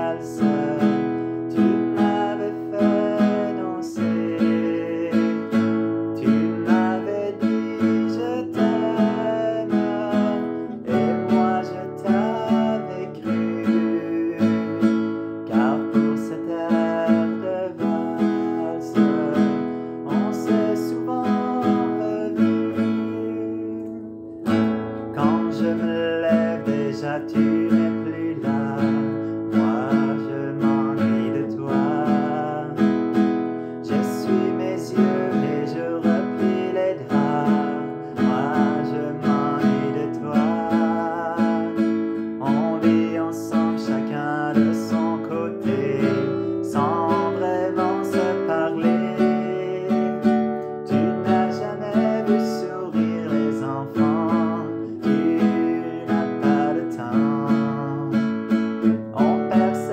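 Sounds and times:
acoustic guitar strumming: 0:00.0 - 0:59.9
man singing: 0:00.0 - 0:59.9.

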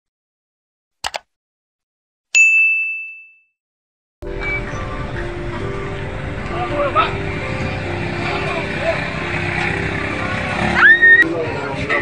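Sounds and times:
mouse clicks: 0:01.0 - 0:01.3
bright bell ding: 0:02.4 - 0:03.5.

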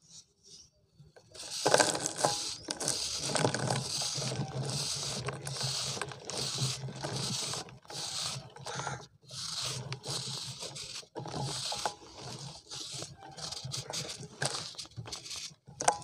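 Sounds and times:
knife scraping dried cement: 0:01.2 - 0:16.0.

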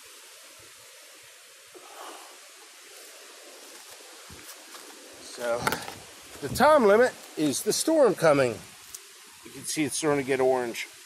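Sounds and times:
outdoor background hiss: 0:00.0 - 0:11.0
man speaking: 0:05.2 - 0:05.8, 0:06.4 - 0:08.6, 0:09.5 - 0:10.9.

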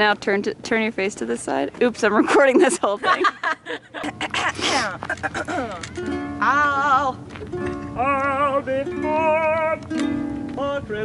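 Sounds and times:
ukulele chords: 0:05.5 - 0:11.0
woman singing with vibrato: 0:06.4 - 0:07.3.

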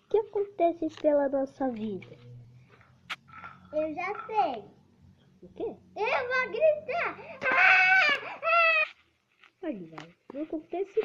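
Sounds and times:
child screaming: 0:06.0 - 0:09.0.

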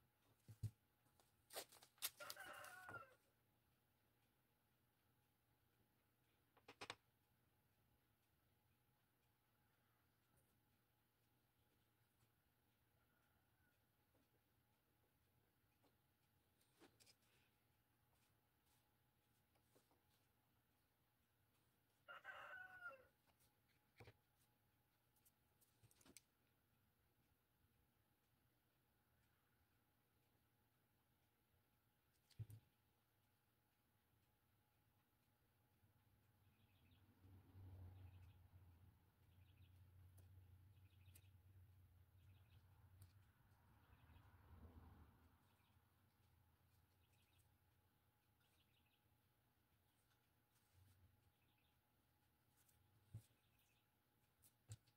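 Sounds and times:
rooster crow: 0:02.2 - 0:03.3, 0:22.1 - 0:23.1.

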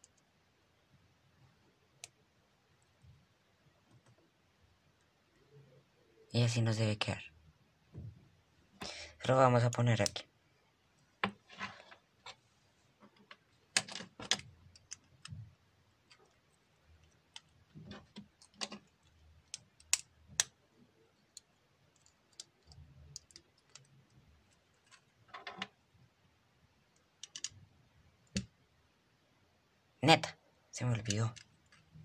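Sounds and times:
plastic bricks clicking: 0:13.2 - 0:15.4, 0:17.0 - 0:20.6, 0:27.1 - 0:27.6.

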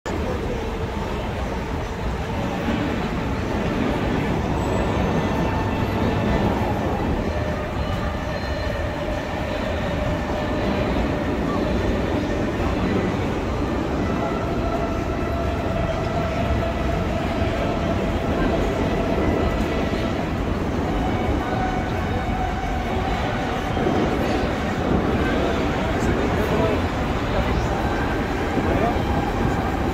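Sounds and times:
road traffic rumble: 0:00.0 - 0:29.9
crowd of passers-by talking: 0:00.1 - 0:29.9.

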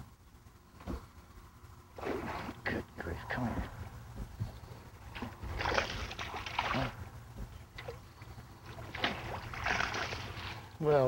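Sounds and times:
steady low rumble: 0:00.0 - 0:10.9
fish splashing at surface: 0:05.1 - 0:07.0, 0:08.6 - 0:10.7.

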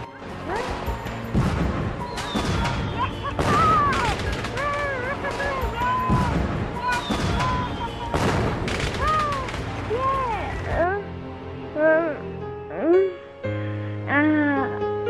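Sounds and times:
fireworks bangs and crackling: 0:00.6 - 0:10.7
child cheering: 0:03.0 - 0:08.1, 0:09.0 - 0:10.4.

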